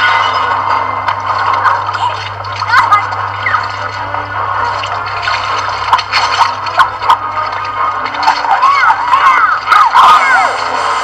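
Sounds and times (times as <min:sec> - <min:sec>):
low steady hum: 0:00.0 - 0:11.0
water splashing: 0:00.6 - 0:11.0.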